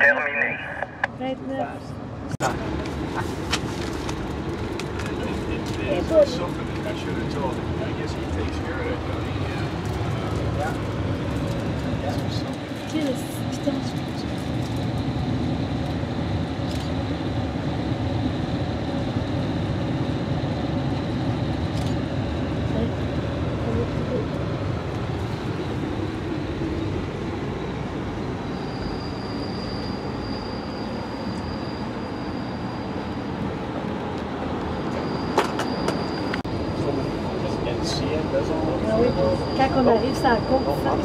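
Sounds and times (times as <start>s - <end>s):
high-pitched whine: 11.4s - 41.0s.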